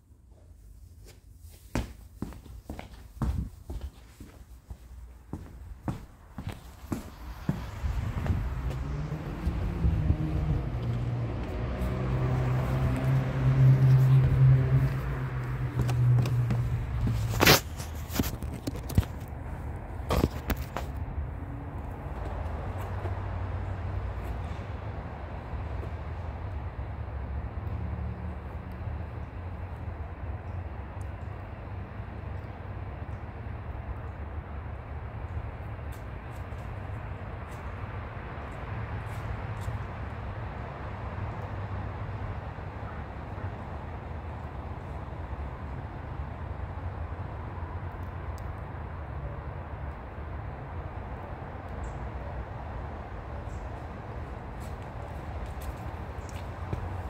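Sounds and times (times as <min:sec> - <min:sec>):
wind rumble on microphone: 0:07.0 - 0:26.1.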